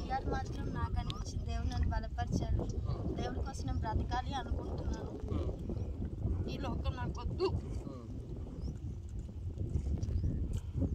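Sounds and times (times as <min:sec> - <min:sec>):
wind rumbling on microphone: 0:00.0 - 0:10.9.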